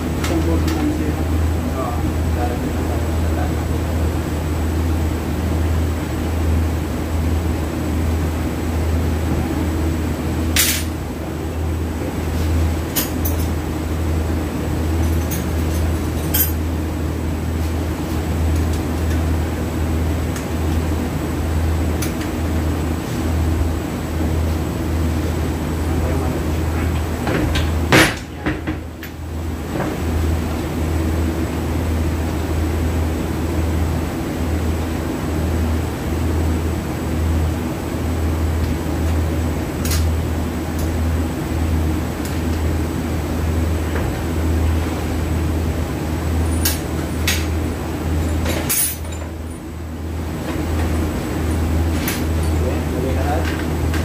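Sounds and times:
steady low hum: 0.0 - 54.0.

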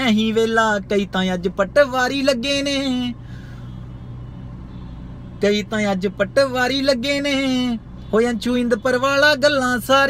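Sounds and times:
man singing unaccompanied: 0.0 - 3.2, 5.5 - 10.0
low car interior hum: 0.0 - 10.0.

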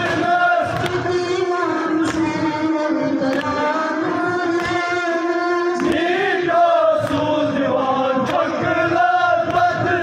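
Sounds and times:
men chanting a lament: 0.0 - 1.5, 5.7 - 10.0
sharp slaps: 0.7 - 1.1.

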